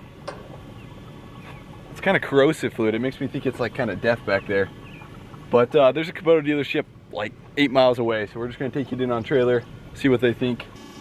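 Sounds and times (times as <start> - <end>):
low outdoor rumble: 0.0 - 10.8.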